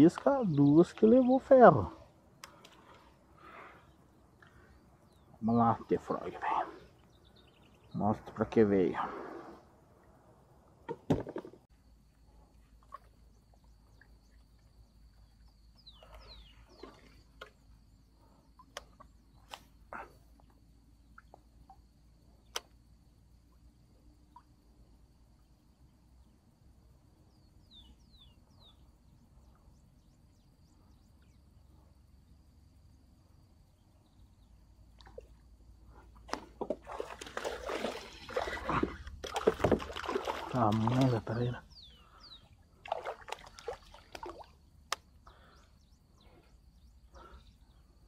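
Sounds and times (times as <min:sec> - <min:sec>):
faint clicks: 0:02.4 - 0:03.0
bird chirps: 0:13.0 - 0:19.5, 0:27.2 - 0:31.6, 0:40.6 - 0:42.7
fish splashing on water surface: 0:36.6 - 0:41.0.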